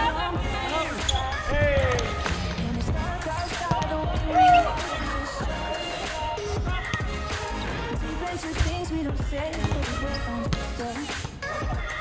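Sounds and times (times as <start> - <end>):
pop music with singing: 0.0 - 12.0
volleyball hits: 3.4 - 5.0.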